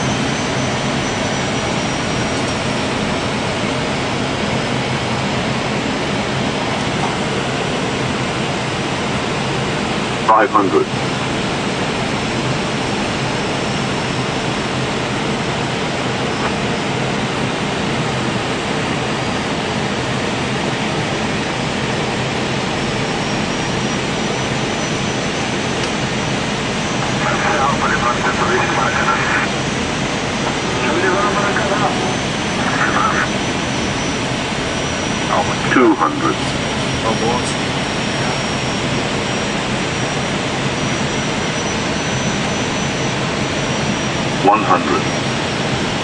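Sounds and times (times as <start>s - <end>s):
cockpit airflow and jet engines: 0.0s - 46.0s.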